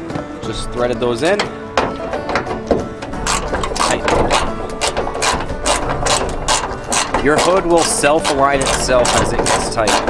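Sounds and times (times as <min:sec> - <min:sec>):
socket ratchet clicking: 0:01.4 - 0:10.0.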